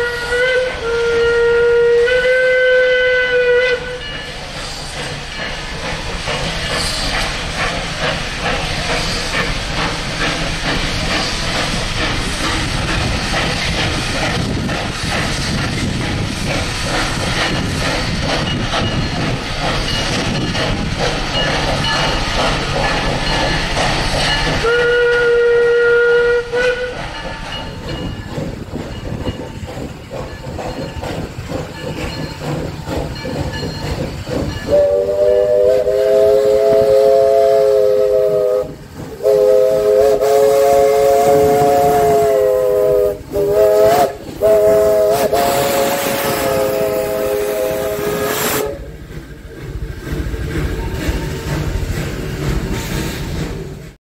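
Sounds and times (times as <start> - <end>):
chord steam whistle blasts: 0.0 - 4.2, 24.6 - 27.1, 34.7 - 49.0
steam locomotive working: 0.0 - 54.0
train cars rolling past: 0.0 - 54.0.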